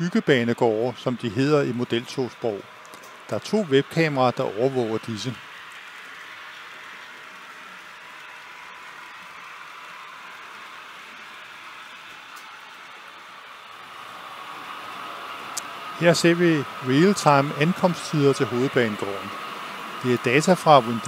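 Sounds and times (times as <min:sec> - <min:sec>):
model trains whirring on track: 0:00.0 - 0:21.0.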